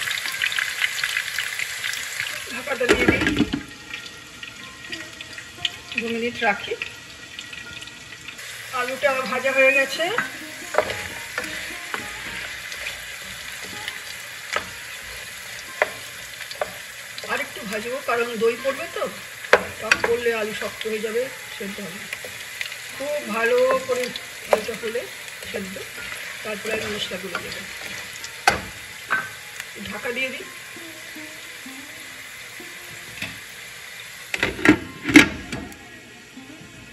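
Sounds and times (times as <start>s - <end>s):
potatoes sizzling in oil: 0.0s - 36.9s
utensil clacking against pan: 9.9s - 20.8s.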